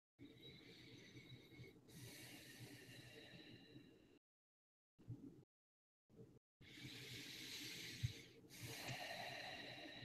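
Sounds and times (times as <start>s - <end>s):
person breathing deeply: 0.4s - 4.2s, 6.6s - 10.0s.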